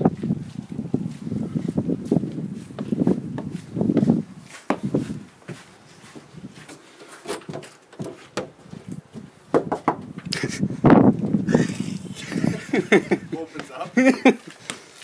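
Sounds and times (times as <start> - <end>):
scuffs and knocks: 2.0 - 10.2.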